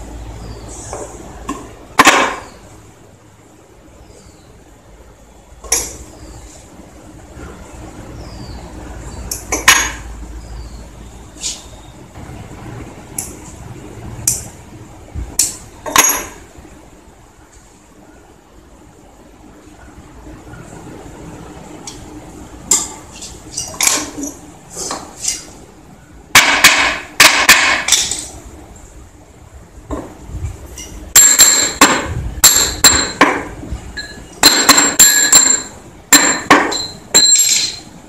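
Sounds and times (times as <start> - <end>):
metallic clicks and clinks: 34.0 - 37.9.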